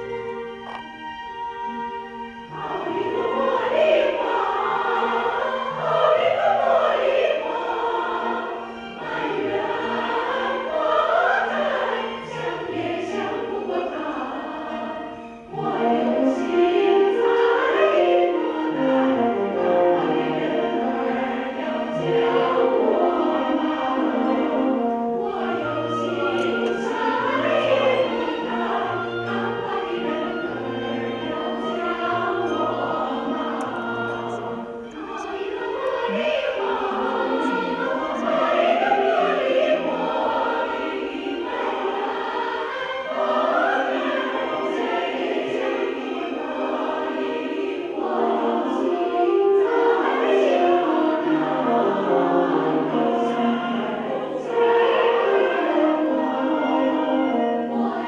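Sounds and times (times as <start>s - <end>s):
choir singing with orchestra: 0.0s - 58.0s.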